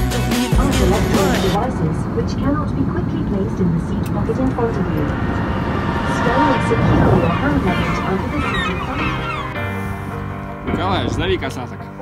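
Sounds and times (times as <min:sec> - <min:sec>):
indistinct voices: 0:00.5 - 0:10.0
steady low rumble: 0:00.9 - 0:10.4.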